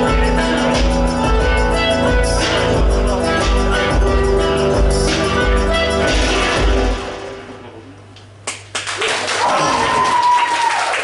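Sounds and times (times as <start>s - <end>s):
live music ringing out: 0.0s - 8.0s
low amplifier hum: 0.0s - 8.8s
audience hand claps: 8.4s - 11.0s.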